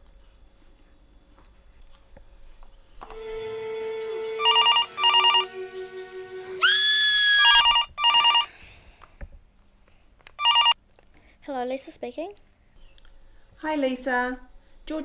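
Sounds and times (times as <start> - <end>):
sustained music chord: 3.1 - 6.7
telephone ringing: 4.4 - 5.5, 7.4 - 8.5, 10.4 - 10.8.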